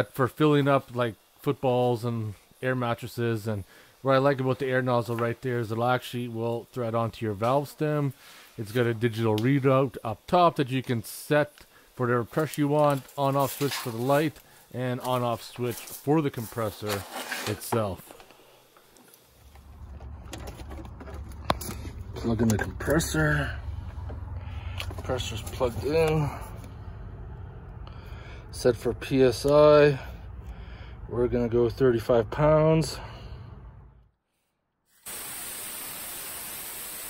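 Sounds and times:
low rumble in vehicle cabin: 19.4s - 34.1s
air hissing from tyre valve: 34.9s - 37.0s.

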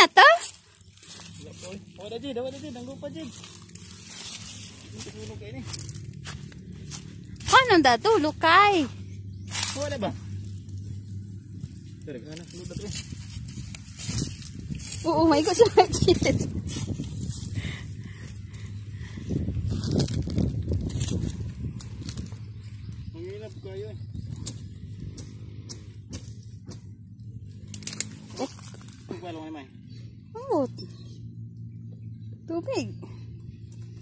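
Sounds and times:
rustling in grass: 0.1s - 25.6s
footsteps in grass: 0.3s - 23.1s.

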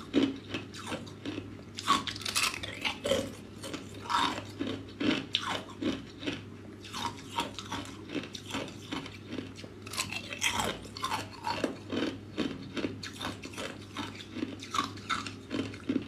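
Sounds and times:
ice cubes crunching: 0.0s - 16.0s.

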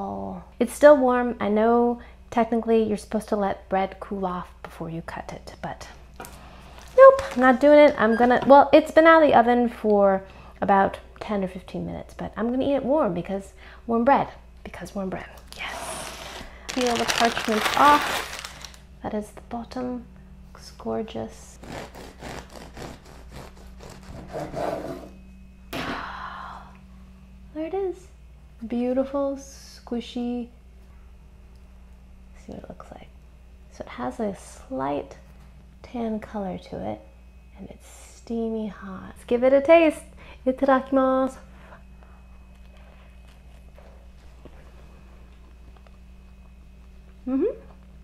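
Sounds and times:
low room hum: 0.0s - 48.0s
bread knife sawing through loaf: 21.6s - 25.1s.

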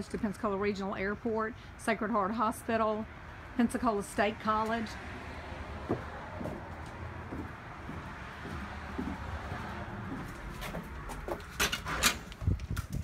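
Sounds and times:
outdoor background: 0.0s - 13.0s
door opening clicks and knocks: 11.4s - 12.4s.

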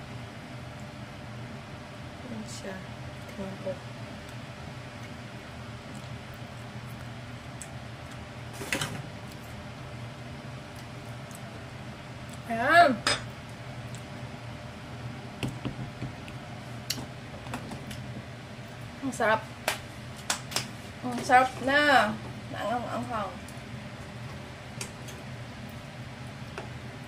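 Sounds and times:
low kitchen hum: 0.0s - 27.0s.

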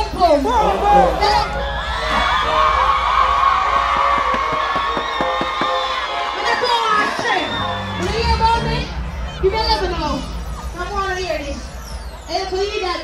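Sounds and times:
crowd cheering and screaming: 0.4s - 13.0s.

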